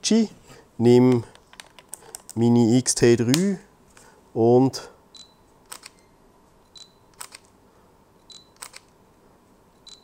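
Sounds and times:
camera focus beep: 0:05.2 - 0:07.4, 0:08.2 - 0:08.9, 0:09.8 - 0:10.0
camera shutter double click: 0:07.1 - 0:07.5, 0:08.4 - 0:08.9.

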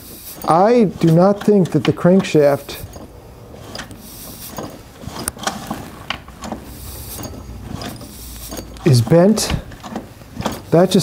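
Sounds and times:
chainsaw sprocket clicking and rattling: 0:00.3 - 0:11.0.

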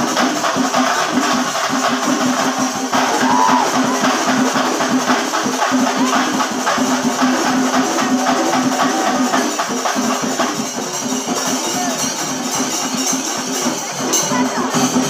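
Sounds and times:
drums beaten in fast rhythm: 0:00.0 - 0:15.0
hand cymbals clashing: 0:00.0 - 0:15.0.

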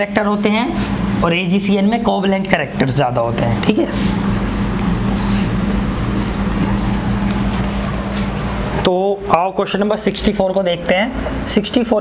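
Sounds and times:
fan running with low hum: 0:00.0 - 0:12.0.

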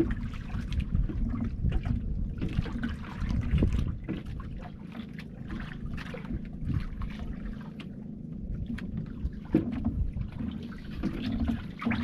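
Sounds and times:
wind buffeting microphone: 0:00.0 - 0:04.8, 0:05.5 - 0:07.6, 0:08.3 - 0:12.0
water splashing against boat hull: 0:00.0 - 0:12.0.

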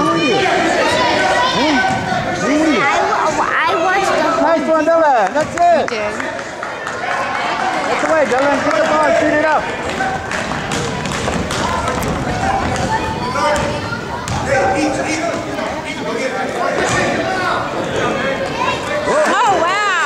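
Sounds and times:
crowd chatter: 0:00.0 - 0:20.0
voices shouting in a gym: 0:00.0 - 0:20.0.

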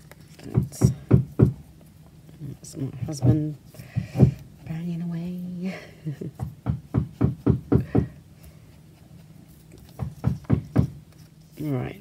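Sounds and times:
rapid hammering knocks: 0:00.5 - 0:01.6, 0:04.0 - 0:04.4, 0:06.4 - 0:08.2, 0:09.9 - 0:11.0.

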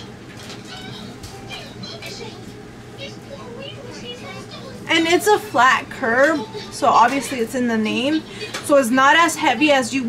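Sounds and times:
woman speaking: 0:04.8 - 0:10.0.

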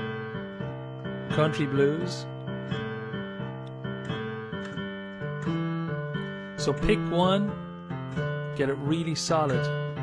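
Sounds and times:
piano blues bass pattern: 0:00.0 - 0:10.0.

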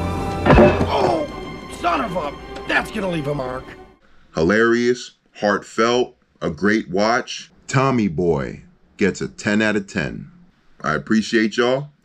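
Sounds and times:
film music score: 0:00.0 - 0:04.0
heavy thunk: 0:00.4 - 0:01.4.

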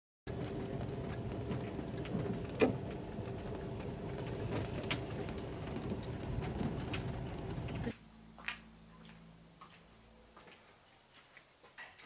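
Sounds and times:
engine and road hum: 0:00.2 - 0:08.0
small clicks and rattles: 0:00.3 - 0:07.9.

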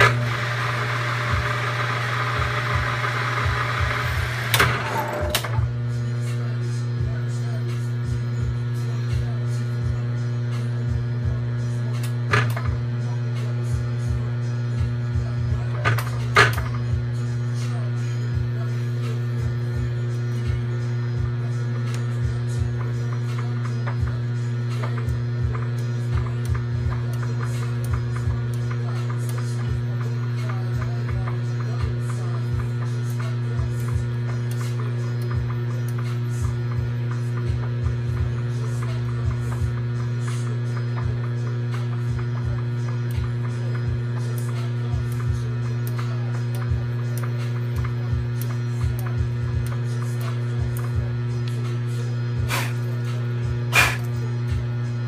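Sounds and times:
milling machine humming: 0:00.0 - 0:55.0.

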